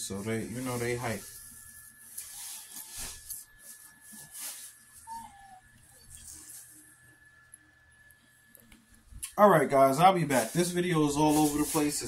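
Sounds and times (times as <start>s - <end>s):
dog whining: 5.0s - 6.5s.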